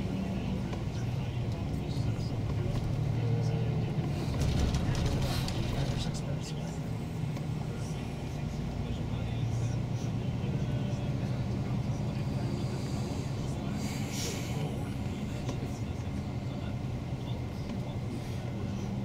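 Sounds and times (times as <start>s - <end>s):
bus engine drone: 0.0s - 19.0s
road noise: 0.0s - 19.0s.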